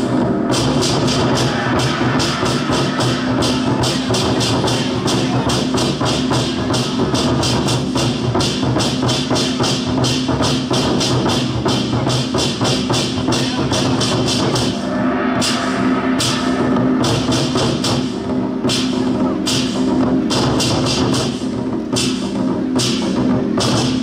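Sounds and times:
large drums beaten with sticks: 0.0 - 24.0.

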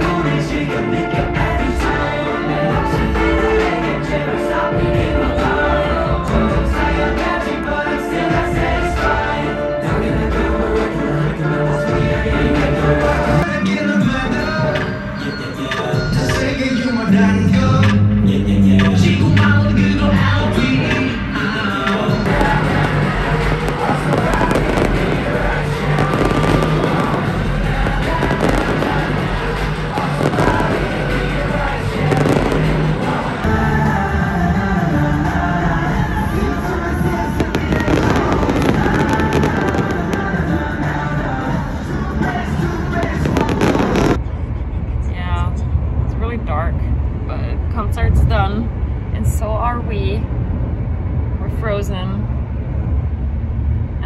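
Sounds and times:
steady low rumble: 0.0 - 14.8, 16.0 - 54.0
live pop concert music: 0.0 - 44.2
sharp crackling bangs: 22.3 - 33.4, 37.3 - 41.0, 42.9 - 44.2.

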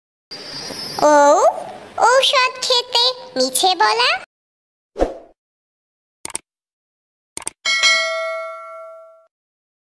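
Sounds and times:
notification bell ding: 7.7 - 9.3.

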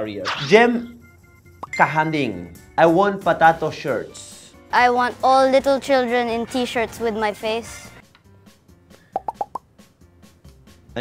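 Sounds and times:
faint background music: 0.0 - 11.0
cartoon plop sound effects: 9.2 - 9.6.

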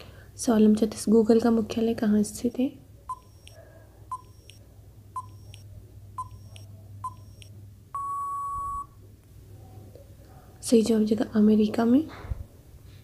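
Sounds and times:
countdown timer beeps: 3.1 - 4.6, 5.2 - 5.6, 6.2 - 8.9.

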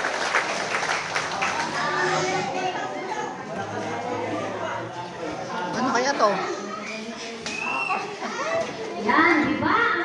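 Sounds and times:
children and women talking: 1.6 - 10.0.

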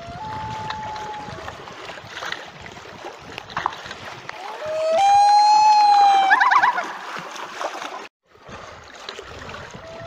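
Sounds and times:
small water splashes: 0.0 - 5.0, 5.8 - 10.0.

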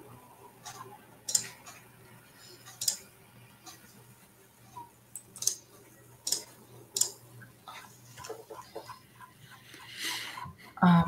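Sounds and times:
faint scattered sounds: 0.0 - 10.9
sharp clicks: 1.3 - 1.7, 2.8 - 3.0, 5.1 - 5.6, 6.2 - 7.2.

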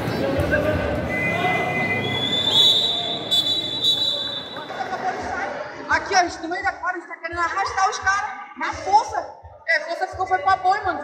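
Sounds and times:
crowd chatter: 0.0 - 9.2
long shrill whistle: 1.1 - 4.6
faint lower whistle: 1.1 - 4.7.

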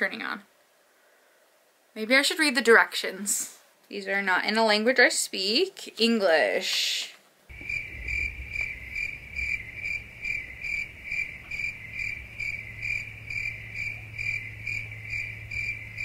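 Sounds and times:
cricket chirping: 7.5 - 16.0
low hum: 7.5 - 16.0.

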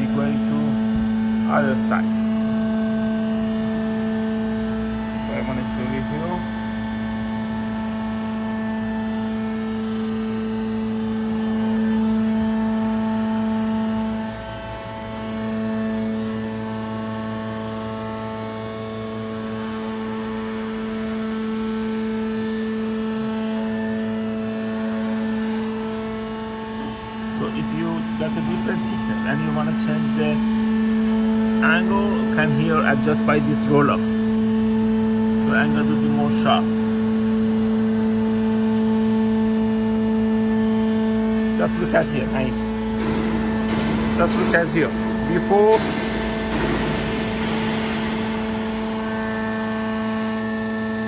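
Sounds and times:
roll forming machine motor drone: 0.0 - 51.0.

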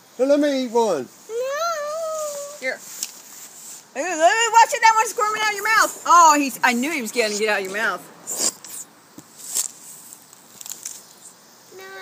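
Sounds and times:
child whining: 1.3 - 2.7, 11.8 - 12.0
child yelping: 1.3 - 2.7, 11.8 - 12.0.

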